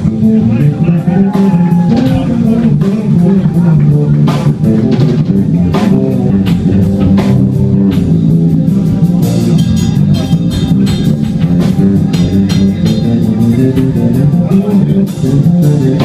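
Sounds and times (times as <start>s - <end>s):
drum kit hits: 0.0s - 16.0s
electric bass: 0.0s - 16.0s
electric guitar: 0.0s - 16.0s.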